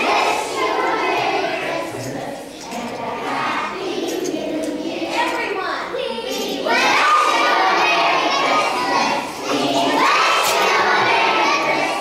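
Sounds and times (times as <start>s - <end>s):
children shouting in unison: 5.9s - 12.0s.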